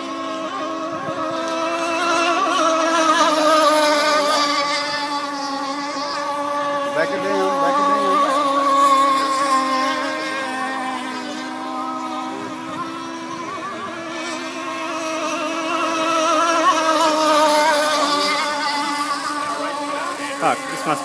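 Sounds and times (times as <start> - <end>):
model boat engine buzzing: 0.0 - 21.0.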